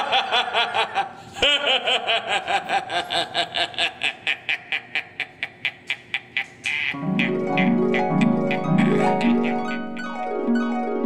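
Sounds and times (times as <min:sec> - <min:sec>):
man laughing: 0:00.0 - 0:10.1.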